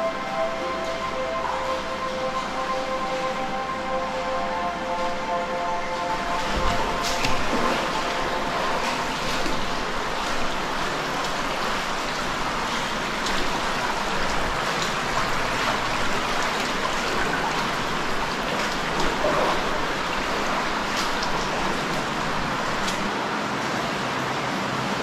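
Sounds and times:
cave river rushing: 0.0s - 25.0s
water splashes: 0.0s - 25.0s.

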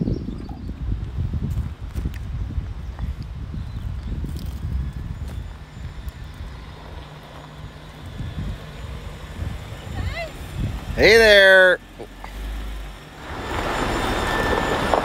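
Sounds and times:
vehicle engine running low: 0.0s - 15.0s
tyres crackling over dirt: 3.0s - 15.0s.

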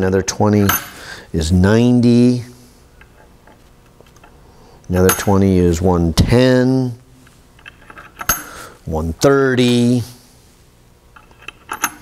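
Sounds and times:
metal weight clicks: 11.2s - 12.0s.

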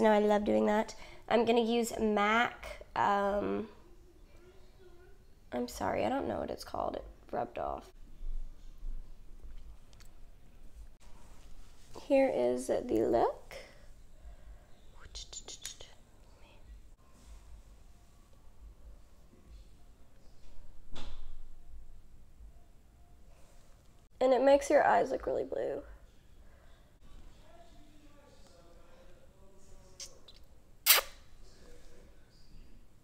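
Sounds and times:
faint whispering: 13.6s - 17.4s
loud smacking kiss: 30.0s - 31.2s.

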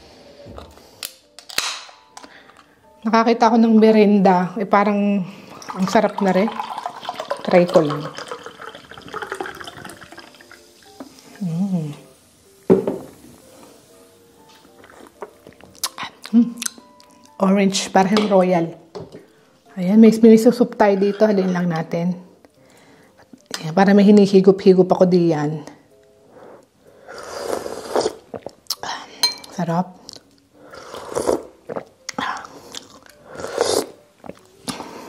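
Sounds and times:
faint background music: 0.0s - 35.0s
soda pouring and fizzing: 5.5s - 11.3s
person slurping broth: 27.1s - 28.8s, 30.6s - 34.0s.

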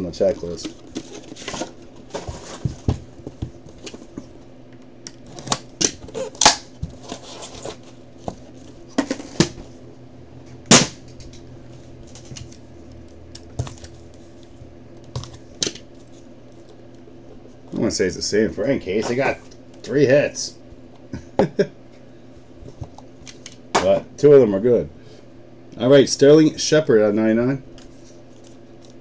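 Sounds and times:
faint steady hum: 0.0s - 29.0s.

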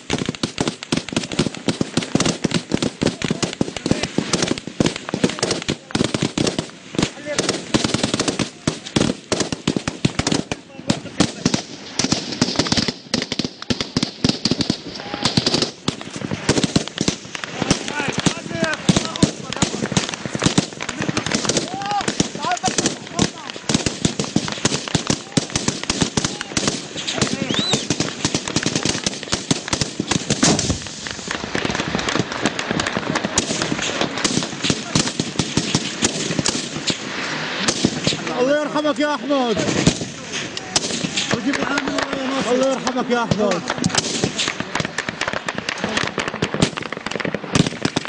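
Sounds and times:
small-arms gunfire: 0.0s - 37.0s, 37.6s - 38.3s, 43.3s - 48.0s.

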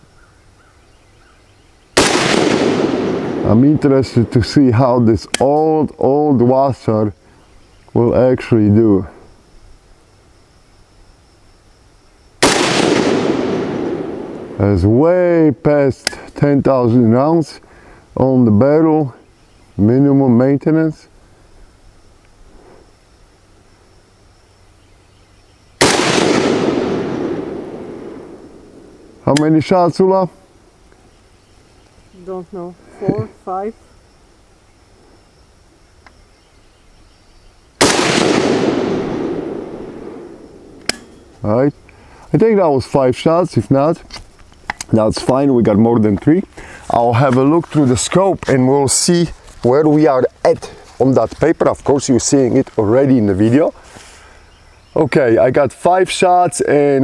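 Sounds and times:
rifle shot with echo: 2.0s - 4.4s, 12.4s - 14.7s, 25.8s - 29.2s, 37.8s - 41.3s.

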